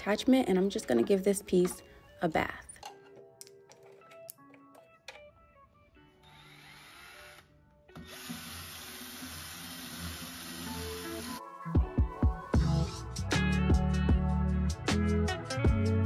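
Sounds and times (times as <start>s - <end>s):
cordless drill brush whirring: 6.2s - 11.4s.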